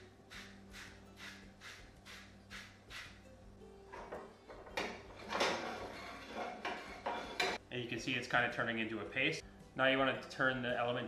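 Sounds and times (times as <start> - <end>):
metal spatula scraping a skillet: 3.9 - 7.6.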